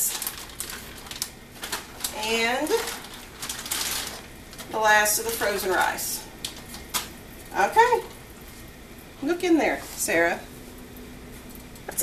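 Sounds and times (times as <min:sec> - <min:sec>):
plastic bag crinkling: 0:00.0 - 0:08.8.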